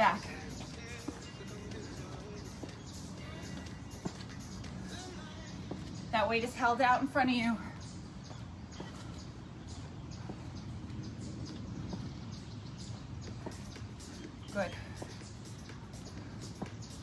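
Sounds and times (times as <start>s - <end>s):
woman speaking: 6.2s - 7.6s, 14.5s - 14.8s.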